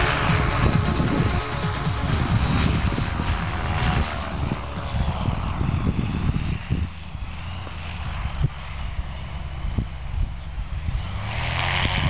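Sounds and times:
microlight engine droning: 0:00.0 - 0:12.0
wind rumble on microphone: 0:00.0 - 0:12.0.

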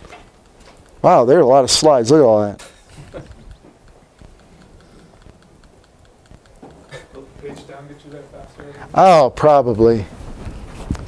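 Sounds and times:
quick key clicks: 0:00.0 - 0:08.7.

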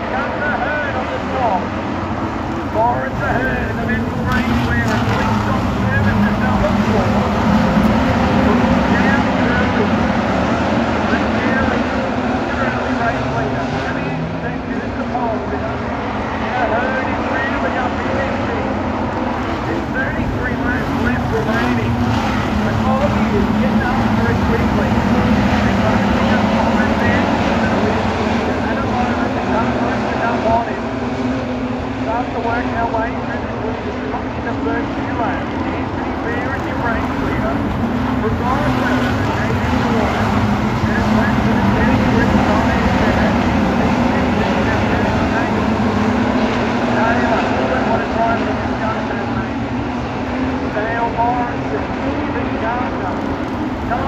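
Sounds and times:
race car engines drone: 0:00.0 - 0:54.0.

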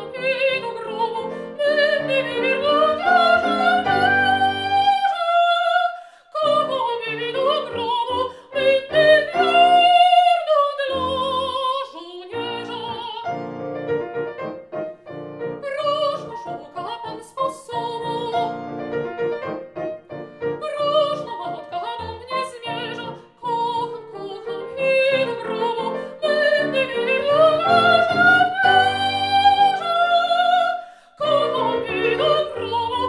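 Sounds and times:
grand piano accompaniment: 0:00.0 - 0:05.8, 0:06.4 - 0:33.0
soprano singing opera: 0:00.0 - 0:13.5, 0:15.5 - 0:18.6, 0:20.5 - 0:33.0.

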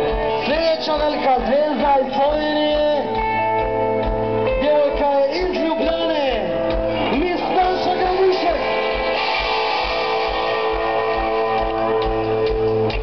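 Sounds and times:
live pop-rock band playing: 0:00.0 - 0:13.0.

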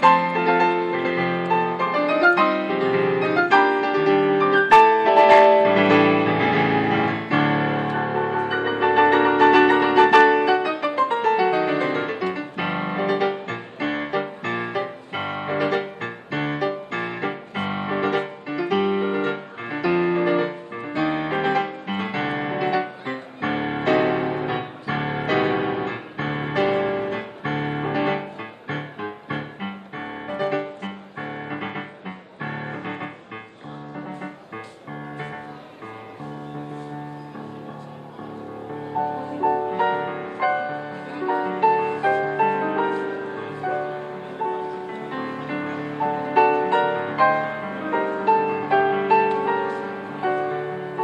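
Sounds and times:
solo digital piano: 0:00.0 - 0:51.0.

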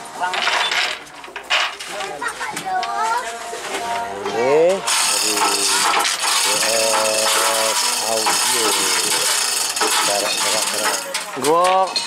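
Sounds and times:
chain hoist rattling: 0:04.9 - 0:12.0.

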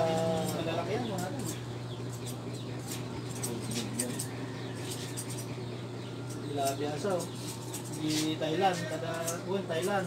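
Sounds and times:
scissors snipping hair: 0:00.0 - 0:05.6, 0:06.3 - 0:10.0.

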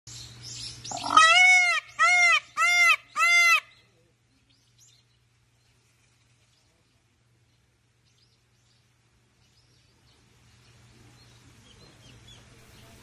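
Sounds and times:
peacock wailing calls: 0:00.9 - 0:03.8
faint hiss: 0:03.8 - 0:13.0.

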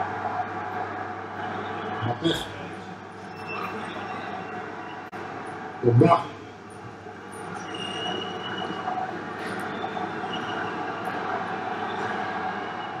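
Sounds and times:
faint high whistle tones: 0:07.6 - 0:10.8.

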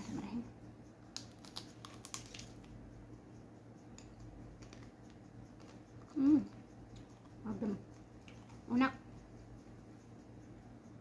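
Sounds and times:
low steady hum: 0:00.0 - 0:11.0
chewing clicks: 0:01.1 - 0:02.8
chocolate shell cracking: 0:01.1 - 0:02.8.

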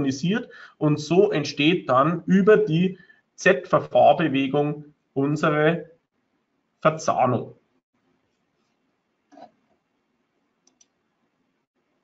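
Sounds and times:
computer mouse clicks: 0:09.3 - 0:09.8, 0:10.6 - 0:11.0.

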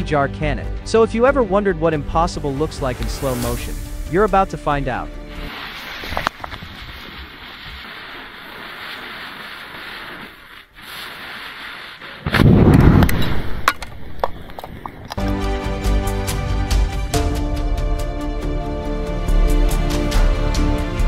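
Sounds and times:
music: 0:00.0 - 0:05.6, 0:15.2 - 0:21.0
deep rush of charge igniting: 0:02.7 - 0:14.2
lit fuse hissing: 0:02.8 - 0:04.3, 0:05.2 - 0:14.5
crackles: 0:05.3 - 0:15.4.

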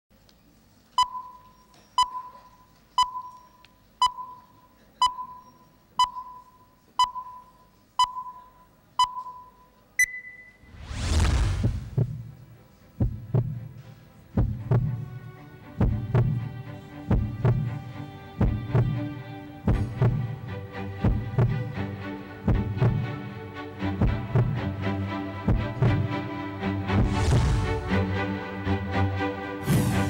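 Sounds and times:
countdown beeps: 0:01.0 - 0:10.7
whoosh with low boom: 0:10.7 - 0:12.3, 0:27.0 - 0:27.8
music with heavy low beat: 0:19.7 - 0:20.3, 0:24.0 - 0:24.6.

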